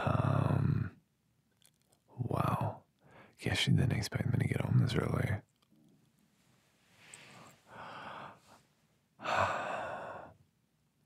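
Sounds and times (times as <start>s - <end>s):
man sighing: 9.2s - 10.3s.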